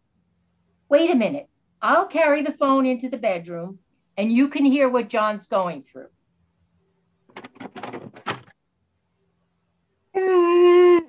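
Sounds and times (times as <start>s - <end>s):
telephone clattering knocks: 7.3s - 8.5s.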